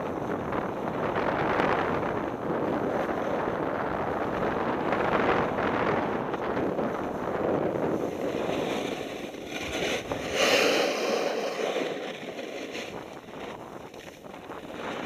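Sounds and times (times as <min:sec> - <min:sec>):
wind rushing over microphone: 0:00.0 - 0:15.0
skis sliding on packed snow: 0:04.2 - 0:15.0.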